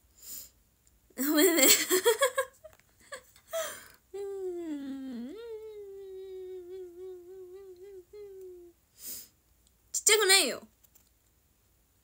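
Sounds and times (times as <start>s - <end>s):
woman humming: 3.6s - 8.8s.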